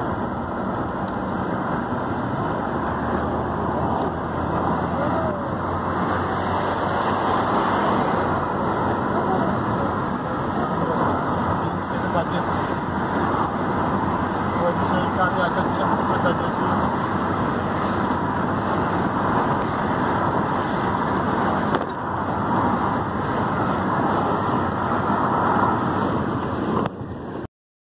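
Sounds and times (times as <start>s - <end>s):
car road noise: 0.0s - 27.5s
wind rushing over microphone: 0.0s - 27.5s.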